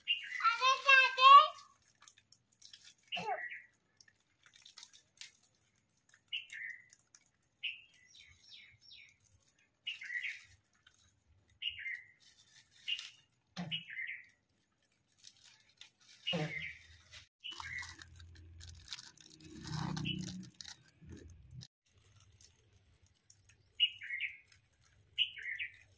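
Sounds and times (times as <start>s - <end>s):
small bird chirping: 0.0s - 1.1s, 6.1s - 14.4s, 15.2s - 22.2s, 23.4s - 25.9s
plastic bag handled: 0.0s - 25.9s
snack wrappers crinkling: 0.0s - 25.9s.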